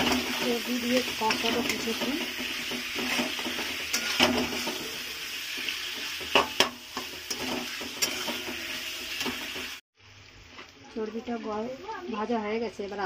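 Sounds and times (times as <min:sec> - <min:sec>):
spatula scraping a metal pan: 0:00.0 - 0:09.8
fat sizzling in oil: 0:00.0 - 0:13.0.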